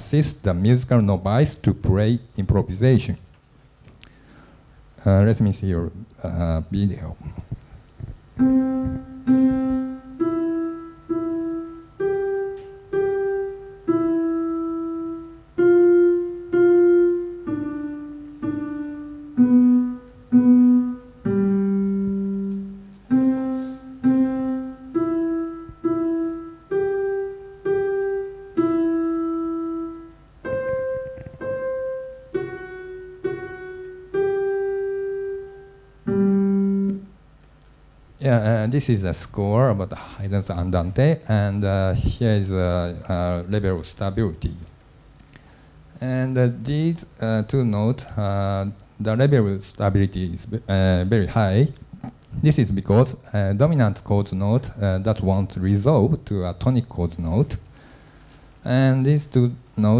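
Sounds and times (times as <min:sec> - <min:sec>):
slow piano melody: 0:08.3 - 0:37.5.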